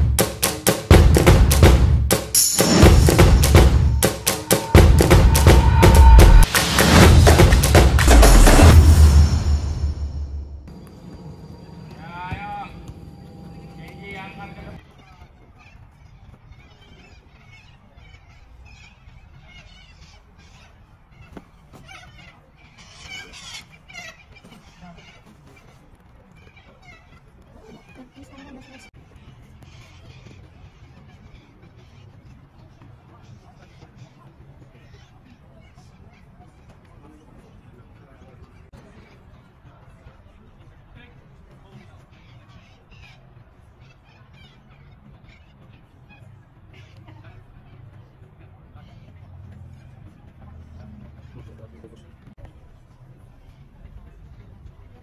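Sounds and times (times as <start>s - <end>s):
birds calling: 10.7s - 52.4s
distant group talking: 11.1s - 55.0s.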